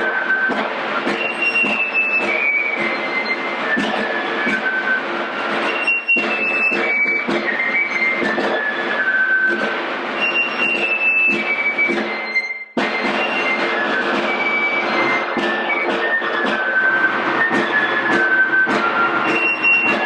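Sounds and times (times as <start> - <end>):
fife melody: 0.0 - 20.0
snare drum rolling: 0.0 - 20.0.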